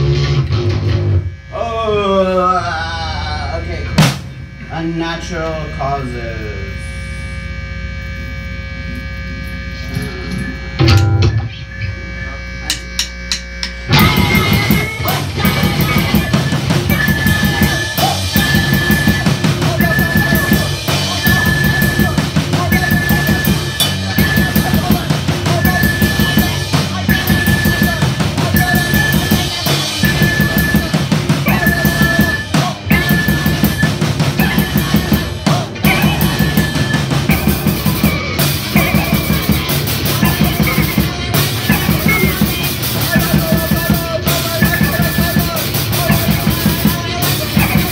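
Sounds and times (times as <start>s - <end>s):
drum kit: 0.0s - 6.8s, 9.8s - 11.6s, 12.7s - 47.9s
held low note: 0.0s - 27.9s
electric guitar: 0.0s - 47.9s
pulsing high note: 0.8s - 43.5s.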